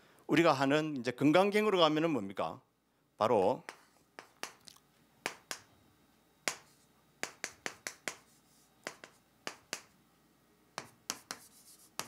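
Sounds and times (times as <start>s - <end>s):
chalk clicking on chalkboard: 3.6s - 4.6s, 5.2s - 5.7s, 6.4s - 10.0s, 10.8s - 12.0s.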